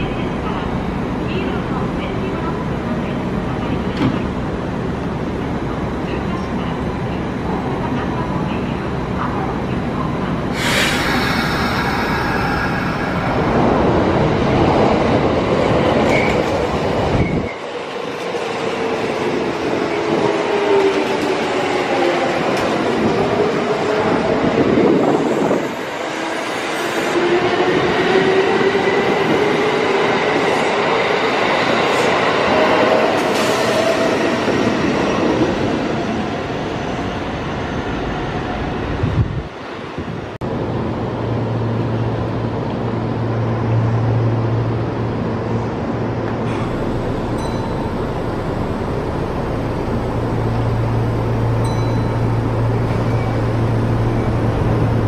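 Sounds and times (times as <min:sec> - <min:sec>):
train wheels on rails: 0:10.5 - 0:37.1.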